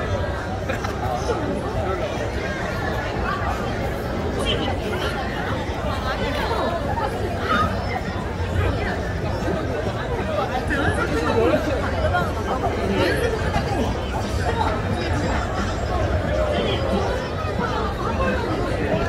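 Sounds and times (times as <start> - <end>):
babble of pedestrian voices: 0.0 - 19.0.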